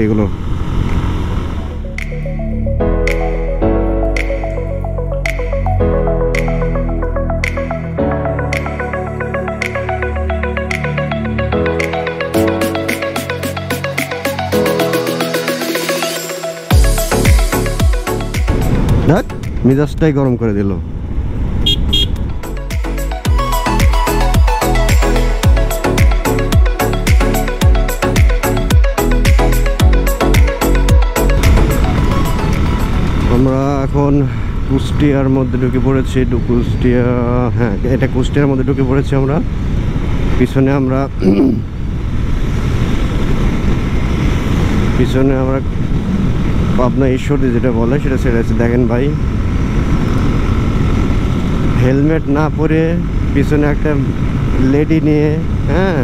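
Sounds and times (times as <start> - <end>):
music with thumping beat: 16.7 - 19.1, 22.7 - 32.8
wind rush on microphone: 18.4 - 22.4, 41.0 - 48.2.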